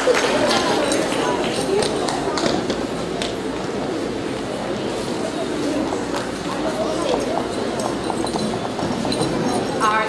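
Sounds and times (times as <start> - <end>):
audience chatter: 0.0 - 10.0
shoes clacking on wooden stage: 0.0 - 10.0.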